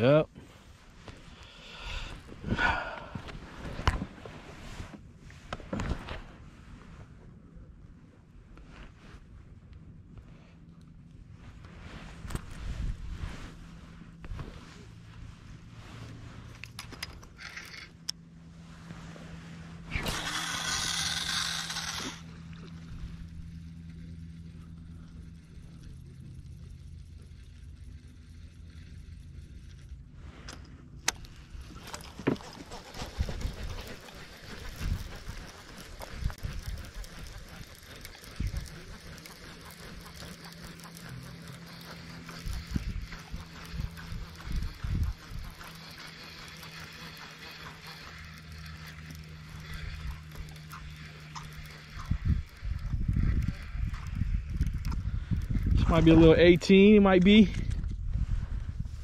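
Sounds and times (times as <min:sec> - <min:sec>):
steady low hum: 0:00.0 - 0:59.0
fishing reel handling clicks: 0:16.5 - 0:18.2, 0:19.9 - 0:29.9, 0:33.5 - 0:55.7.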